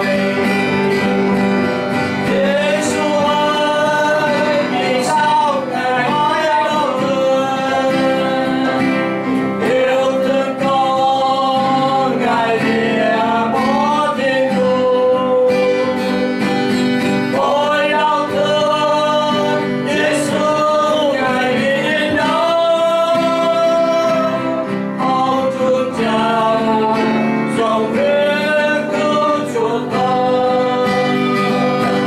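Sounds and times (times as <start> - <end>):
acoustic guitar: 0.0 - 32.0
man singing: 0.0 - 32.0.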